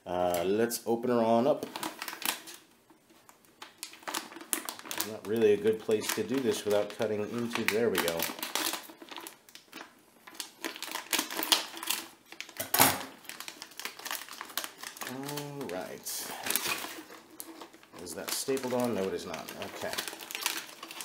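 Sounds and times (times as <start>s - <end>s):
plastic bag crinkling: 1.2s - 21.0s.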